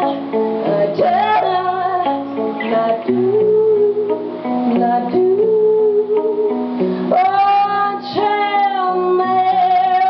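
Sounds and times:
electric guitar chords: 0.0 - 10.0
woman singing high held notes: 0.0 - 10.0.

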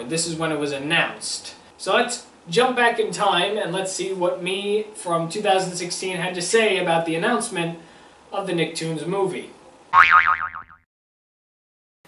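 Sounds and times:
cartoon boing sound effect: 10.0 - 10.8.

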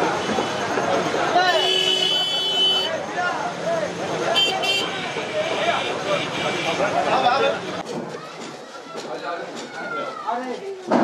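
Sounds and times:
crowd talking: 0.0 - 11.0
vehicle horn toots: 1.5 - 2.9, 4.4 - 7.0.

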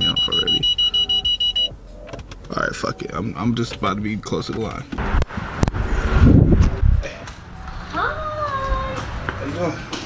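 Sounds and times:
parking sensor beeping: 0.0 - 3.3.

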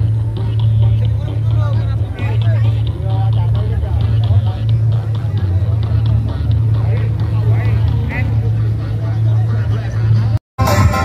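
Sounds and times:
people's voices: 0.0 - 11.0
sound system low rumble: 0.0 - 11.0.

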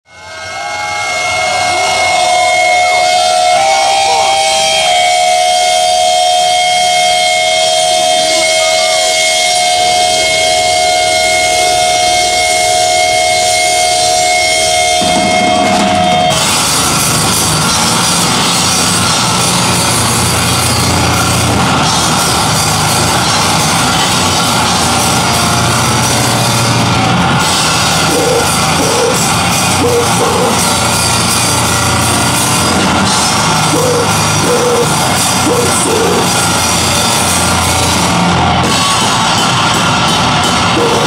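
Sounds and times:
distorted guitar: 0.1 - 41.0
drone of held high notes: 0.1 - 41.0
drums: 0.1 - 41.0.

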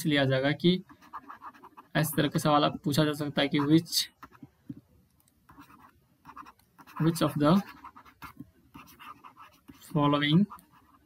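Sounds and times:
pen scratching on tablet: 0.8 - 4.5, 5.5 - 11.0.

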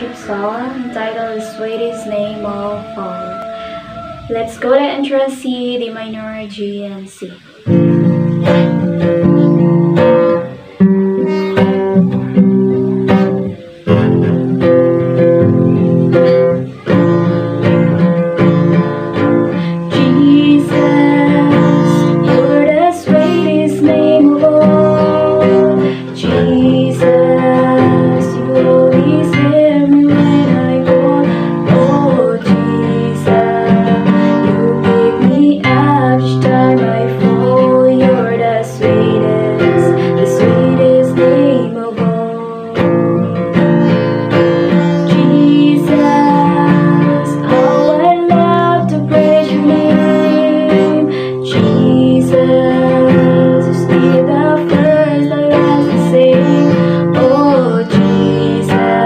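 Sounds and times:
strummed acoustic guitar: 0.0 - 59.0
woman singing: 0.0 - 59.0.

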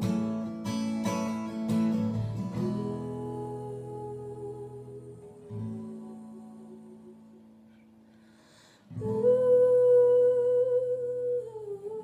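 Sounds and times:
strummed acoustic guitar: 0.0 - 8.2
woman humming: 2.6 - 7.4
quick breath: 8.1 - 8.9.

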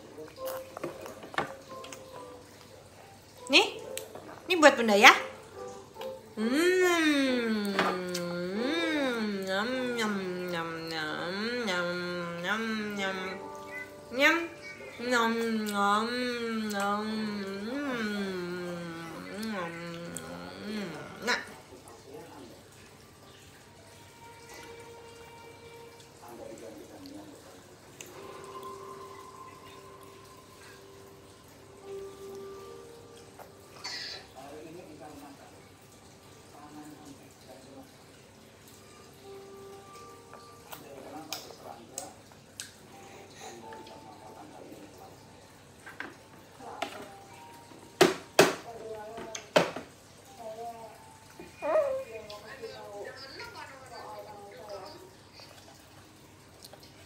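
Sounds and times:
faint background music: 0.0 - 57.0.

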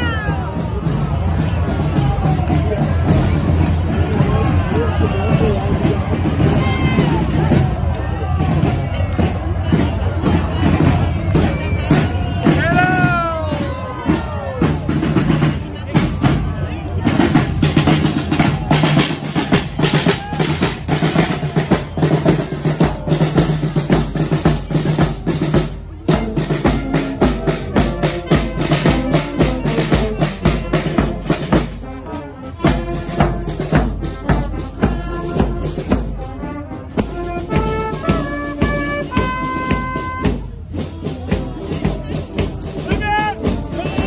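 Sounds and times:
bass drum and snare march: 0.0 - 44.0
trombones and trumpets: 17.0 - 44.0.

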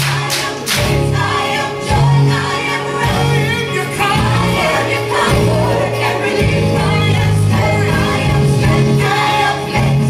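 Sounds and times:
choir singing gospel music: 0.0 - 10.0.

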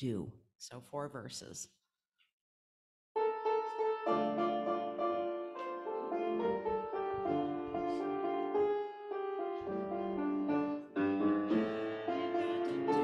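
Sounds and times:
piano playing hymn chords: 3.2 - 13.0.

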